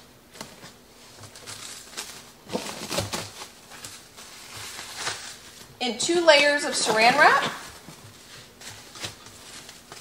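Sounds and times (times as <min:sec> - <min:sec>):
cling film crinkling: 0:06.9 - 0:10.0.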